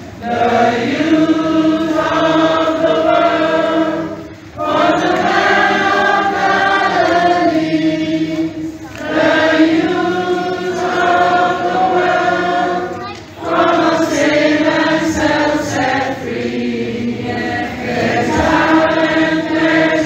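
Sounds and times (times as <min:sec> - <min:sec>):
girls and children singing as a choir: 0:00.0 - 0:20.0.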